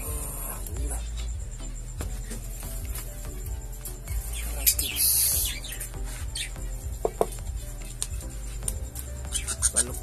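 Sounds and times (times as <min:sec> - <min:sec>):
background music: 0:00.0 - 0:10.0
small birds chirping: 0:00.0 - 0:10.0.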